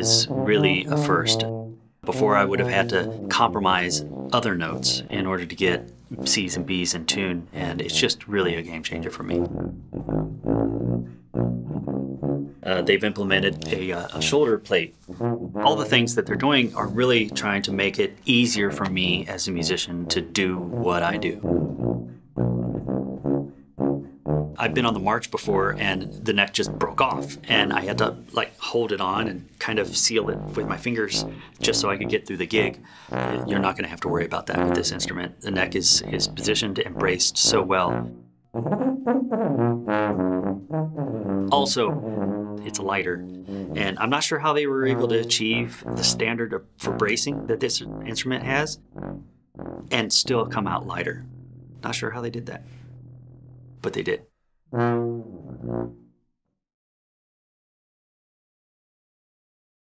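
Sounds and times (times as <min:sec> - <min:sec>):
sousaphone low notes: 0:00.0 - 0:05.0, 0:46.9 - 0:54.2.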